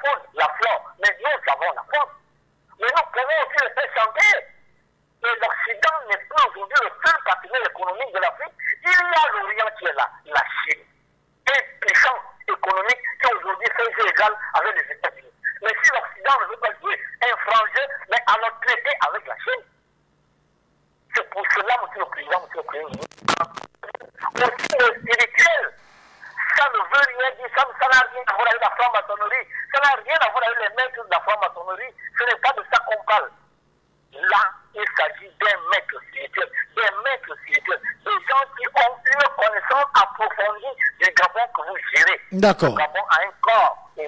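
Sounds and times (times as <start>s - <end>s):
person talking over telephone: 0.0s - 2.2s, 5.2s - 10.8s, 11.5s - 19.7s, 21.1s - 33.3s, 34.2s - 43.8s.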